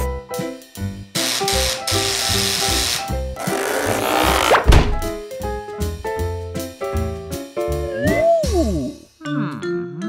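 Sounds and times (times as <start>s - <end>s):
cartoon background music: 0.0s - 10.0s.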